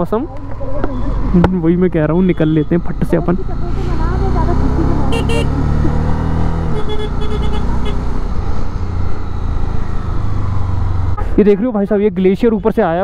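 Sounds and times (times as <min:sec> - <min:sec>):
motorcycle engine at low revs: 0:00.0 - 0:11.6
high horn beeps: 0:02.1 - 0:03.3, 0:05.0 - 0:05.6, 0:06.6 - 0:08.1.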